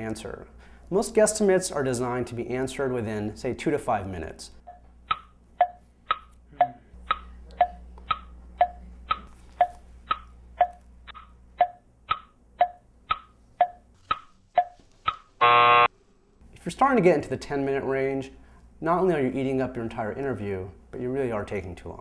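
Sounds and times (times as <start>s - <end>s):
clock ticking: 4.6s - 15.2s.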